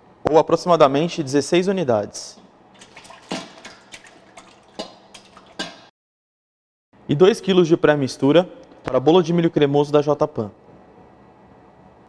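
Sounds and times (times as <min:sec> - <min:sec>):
faint splashing: 0:02.7 - 0:05.9
eggs plopping into metal bowl: 0:02.8 - 0:05.9.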